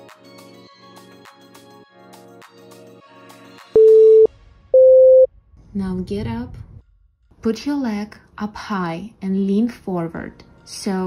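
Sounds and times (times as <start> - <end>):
soft background music: 0.0 - 11.0
electronic timer beeps: 3.8 - 5.3.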